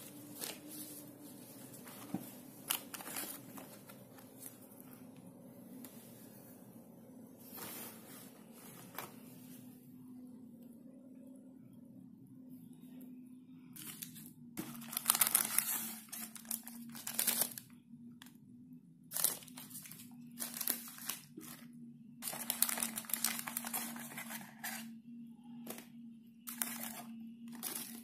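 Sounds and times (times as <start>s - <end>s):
paper rustling and crinkling: 0.0s - 4.8s, 7.4s - 9.7s, 13.8s - 17.7s, 19.1s - 25.0s, 26.5s - 28.0s
faint steady low hum: 0.0s - 28.0s.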